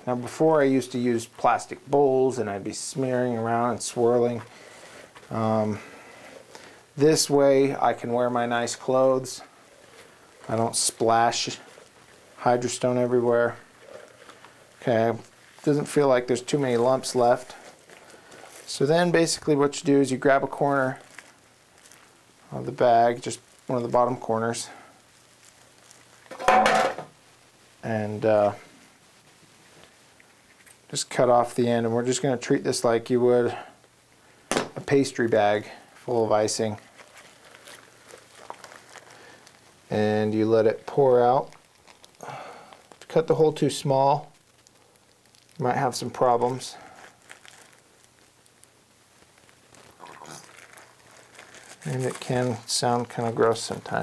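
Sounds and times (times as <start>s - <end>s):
plastic bag crinkling: 0.3s - 28.7s, 33.8s - 54.0s
clatter of hard objects: 26.3s - 27.1s.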